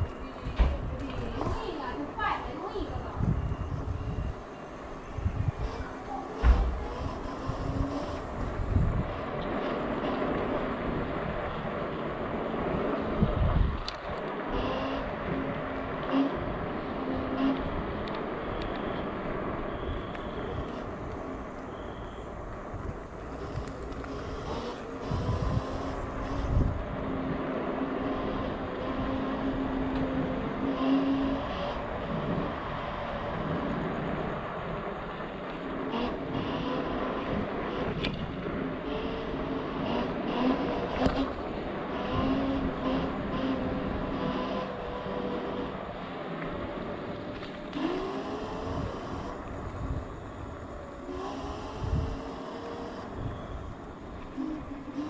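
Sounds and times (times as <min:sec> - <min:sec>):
electric scooter motor whine: 0:00.0 - 0:55.0
tyre noise on road: 0:00.0 - 0:55.0
wind noise: 0:00.0 - 0:55.0.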